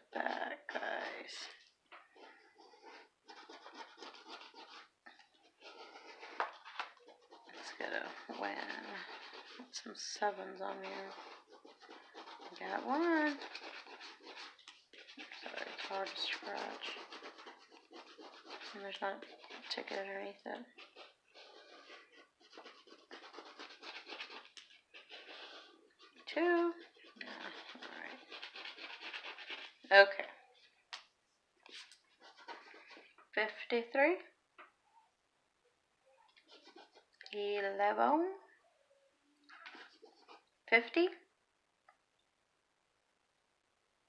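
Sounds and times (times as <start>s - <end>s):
scratching lottery ticket: 0.0s - 30.6s, 31.7s - 33.6s, 36.3s - 37.7s, 39.5s - 40.9s.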